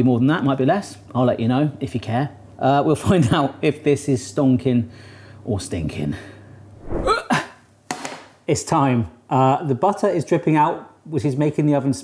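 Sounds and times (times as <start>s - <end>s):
man's non-word vocal sound: 6.8s - 7.2s.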